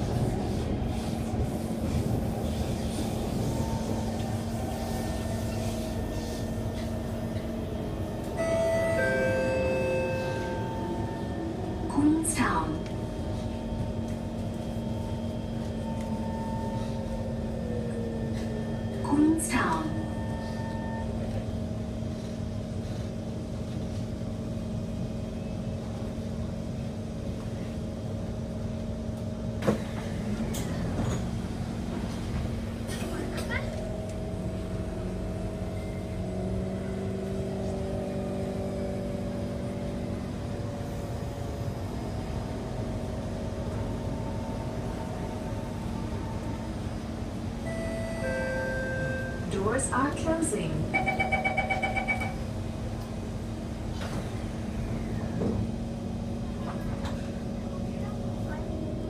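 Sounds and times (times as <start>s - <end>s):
train motor hum: 0.0s - 59.0s
train rumble: 0.0s - 59.0s.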